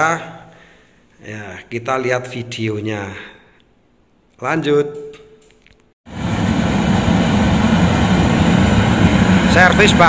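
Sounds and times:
oil burner blower and flame: 6.1 - 10.0.

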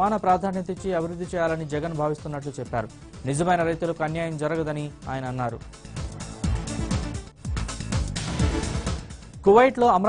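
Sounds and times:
man speaking: 0.0 - 5.7
background music: 0.0 - 10.0.

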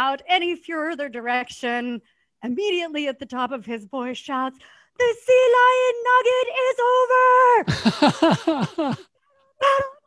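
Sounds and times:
woman shouting: 5.4 - 7.7.

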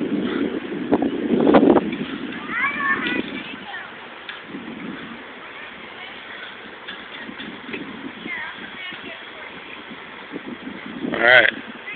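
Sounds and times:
outdoor background noise: 0.0 - 11.9
faint distant voices: 2.3 - 11.9.

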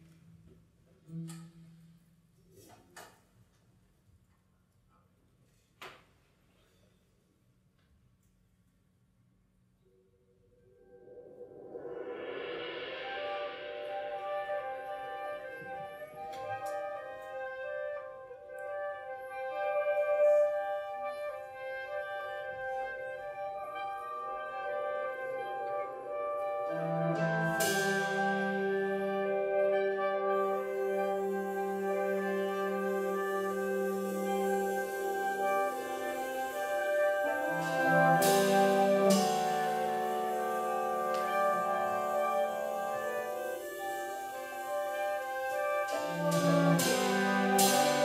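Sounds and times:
big band brass chords: 12.1 - 48.0.

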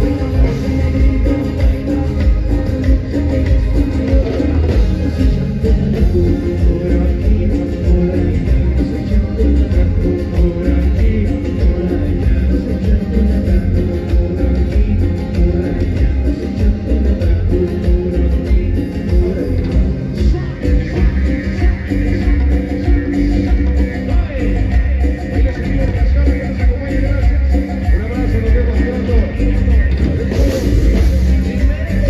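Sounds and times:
heavy bass beat: 0.0 - 32.0
live band playing cumbia: 0.0 - 32.0.

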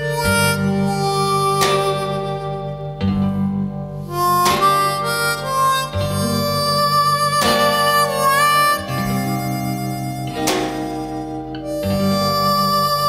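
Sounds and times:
bass line: 0.0 - 13.0
harmonica playing held notes: 0.0 - 13.0
strummed acoustic guitar: 0.0 - 13.0.

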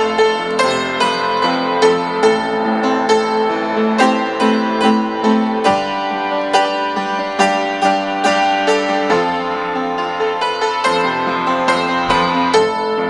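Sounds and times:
upright piano played slowly: 0.0 - 13.0.

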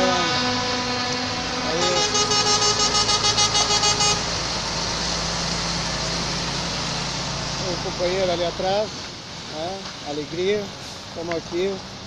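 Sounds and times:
truck air horn toots: 0.0 - 4.4
diesel truck engine rumbling: 0.0 - 12.0.

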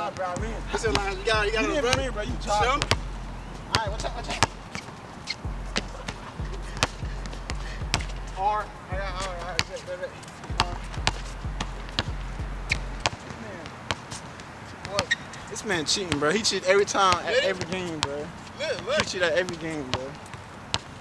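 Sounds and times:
basketball bouncing on hard court: 0.2 - 8.4, 9.0 - 9.8, 10.4 - 14.2, 20.7 - 21.0.

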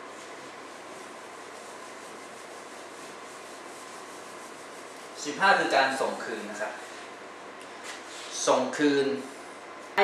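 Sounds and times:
eraser rubbing on whiteboard: 0.2 - 6.7.

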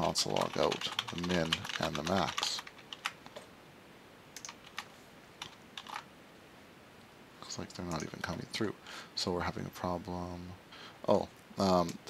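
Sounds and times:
computer keyboard keystrokes: 0.4 - 3.2, 4.4 - 6.0.

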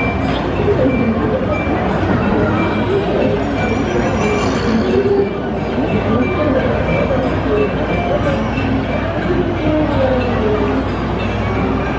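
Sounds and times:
crowd talking: 0.0 - 11.9
music playing: 0.0 - 11.9
ride machinery rumble: 0.0 - 11.9.

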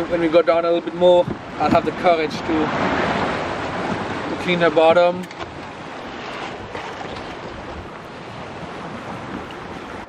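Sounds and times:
wind and water rushing: 0.0 - 10.0
wind buffeting microphone: 0.0 - 10.0.

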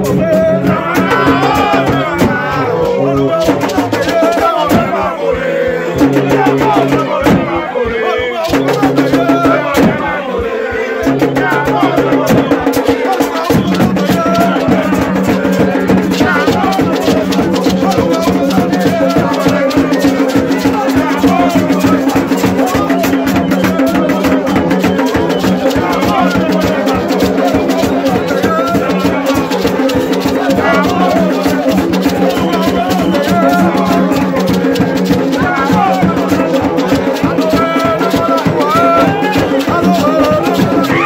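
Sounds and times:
drums: 0.0 - 41.0
man singing: 0.0 - 41.0
maraca shaking: 0.0 - 41.0.

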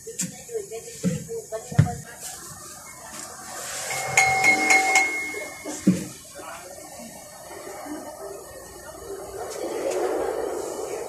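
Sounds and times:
lingering bell-like ring: 3.7 - 6.1.

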